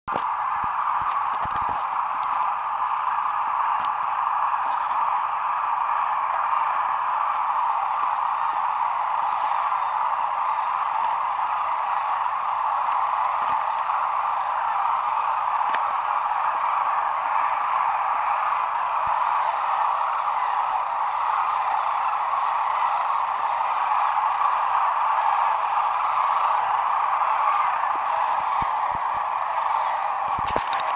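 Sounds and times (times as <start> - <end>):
flock of cranes and geese calling: 0.1 - 30.9.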